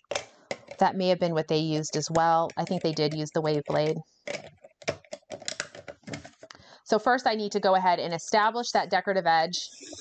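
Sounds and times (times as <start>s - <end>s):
plastic clicks and rattles: 0.0s - 0.8s, 2.0s - 6.6s.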